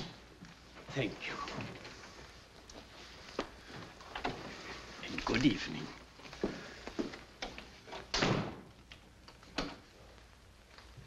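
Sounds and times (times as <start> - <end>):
door shutting with a thud: 8.1 - 8.7.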